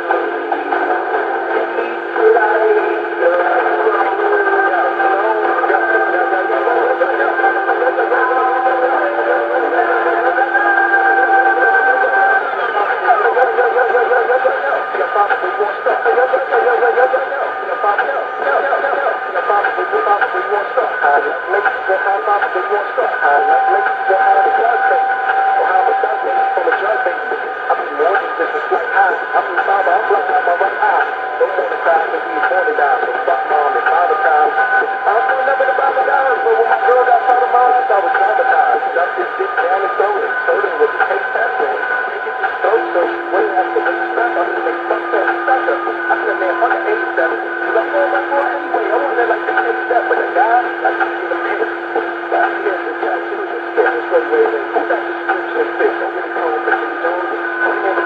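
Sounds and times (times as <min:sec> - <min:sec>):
tinny talking over radio: 0:00.0 - 0:58.0.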